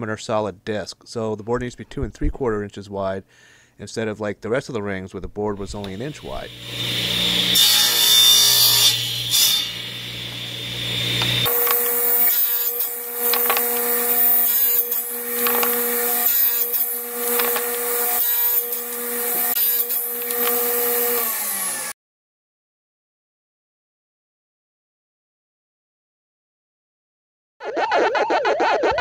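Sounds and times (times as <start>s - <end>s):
saw motor hum: 5.8s - 22.0s
table saw cutting wood: 5.8s - 22.0s.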